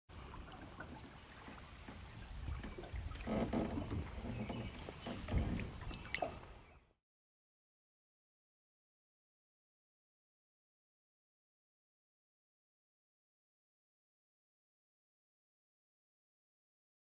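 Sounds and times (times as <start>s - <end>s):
low uneven rumble: 0.1s - 6.7s
water lapping against boat hull: 0.1s - 6.9s
sharp knocks on hull: 2.6s - 6.3s.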